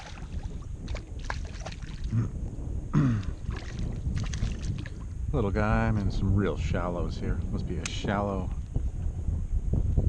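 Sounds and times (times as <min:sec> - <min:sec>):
fish splashing at water surface: 0:00.0 - 0:02.1, 0:03.2 - 0:05.0
low wind rumble on microphone: 0:00.0 - 0:10.0.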